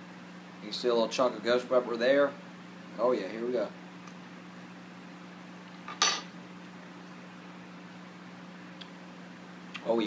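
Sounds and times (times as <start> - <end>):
room noise hum: 0.0 - 10.0.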